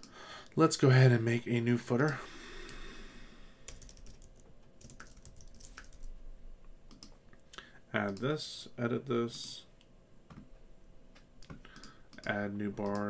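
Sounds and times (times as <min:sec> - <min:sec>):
computer keyboard typing: 0:03.7 - 0:06.1, 0:06.9 - 0:07.2, 0:11.4 - 0:13.0.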